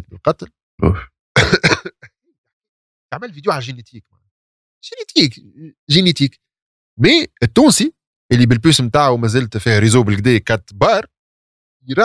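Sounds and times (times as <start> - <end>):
man clearing his throat: 0.8 - 2.1.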